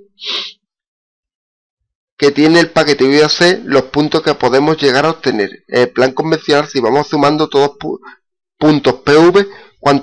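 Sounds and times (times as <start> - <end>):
man sharp intake of breath: 0.1 - 0.6.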